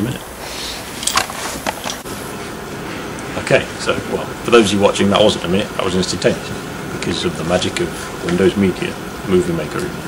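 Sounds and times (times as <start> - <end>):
outdoor night background noise: 0.0 - 10.0
handling clicks and rustles: 0.9 - 2.1.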